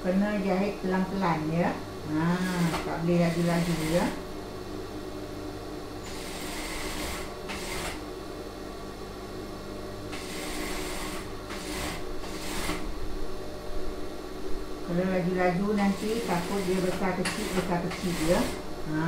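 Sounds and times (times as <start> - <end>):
motor hum: 0.0 - 19.0.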